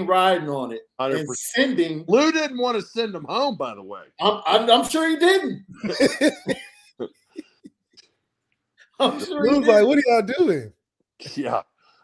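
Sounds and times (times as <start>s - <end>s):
man laughing: 5.2s - 7.7s, 9.0s - 10.0s.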